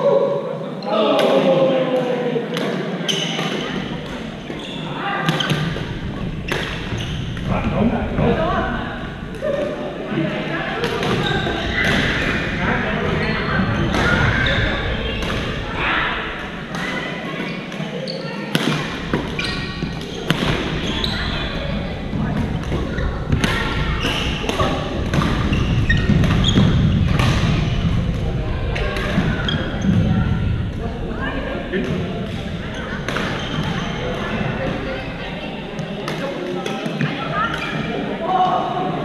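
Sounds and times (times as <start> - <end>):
players' voices: 0.0 - 39.0
rackets striking shuttlecocks: 18.5 - 20.8, 22.1 - 28.2.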